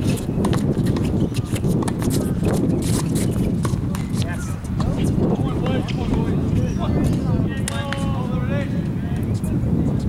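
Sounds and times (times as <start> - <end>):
footsteps shuffling on hard court: 0.0 - 8.2.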